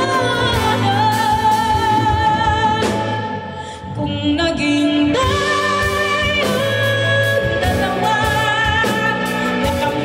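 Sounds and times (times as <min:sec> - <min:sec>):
band playing: 0:00.0 - 0:10.0
woman singing a ballad: 0:00.0 - 0:10.0.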